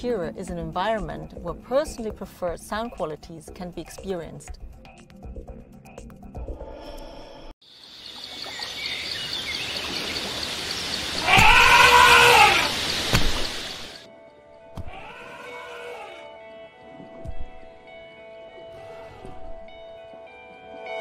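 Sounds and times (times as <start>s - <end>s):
soft music: 0.0s - 7.5s, 14.0s - 21.0s
rushing outdoor noise: 7.7s - 14.0s
elephant trumpeting: 11.2s - 12.8s, 14.9s - 16.2s.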